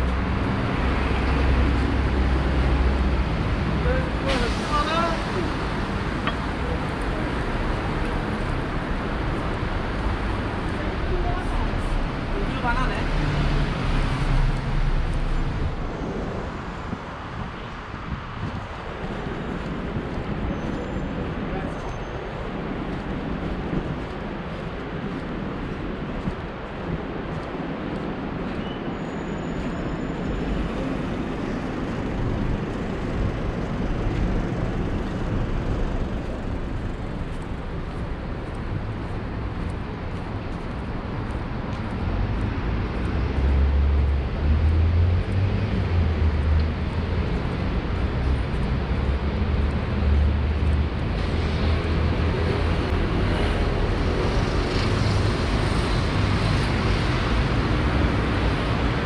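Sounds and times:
street traffic: 0.0 - 59.0.

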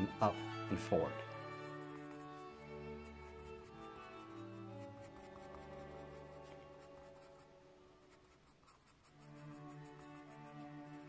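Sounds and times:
soft background music: 0.0 - 11.0
pencil scratching on paper: 1.4 - 11.0.

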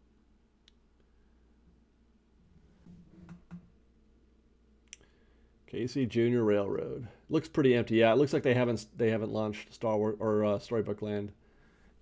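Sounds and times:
faint click: 0.6 - 1.1, 4.8 - 5.1.

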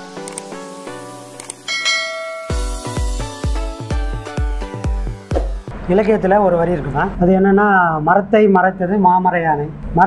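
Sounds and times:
music: 0.0 - 6.1
short clicks: 0.2 - 0.5, 1.3 - 1.6
bright bell ding: 1.7 - 3.1
heavy bass beat: 1.9 - 5.7.

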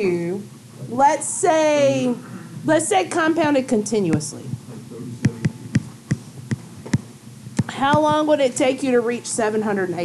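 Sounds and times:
stylus tapping on tablet: 5.2 - 8.3.

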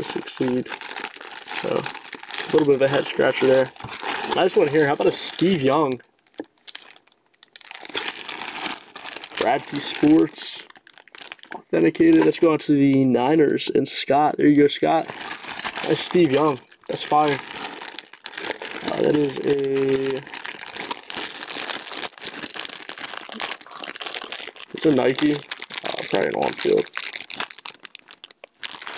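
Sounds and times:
plastic bag crinkling: 0.0 - 12.5, 15.0 - 28.9.

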